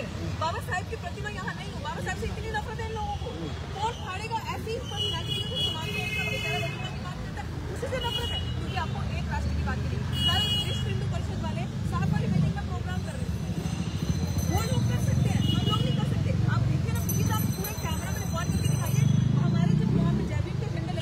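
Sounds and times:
woman talking: 0.0 - 3.2, 3.8 - 13.3, 14.5 - 21.0
low traffic rumble: 0.0 - 21.0.

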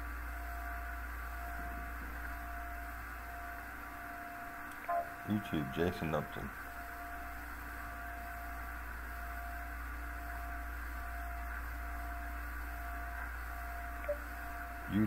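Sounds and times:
electrical hum and hiss: 0.0 - 15.0
faint short blip: 14.0 - 14.2.

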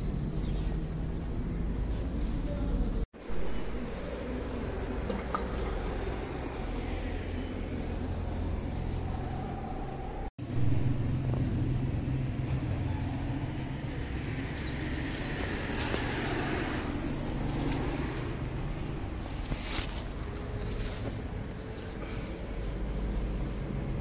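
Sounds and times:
low outdoor rumble: 0.0 - 24.0.

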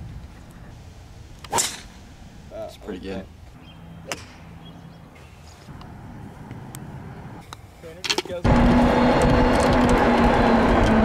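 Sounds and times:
golf club hitting ball: 1.4 - 1.9, 4.0 - 4.5.

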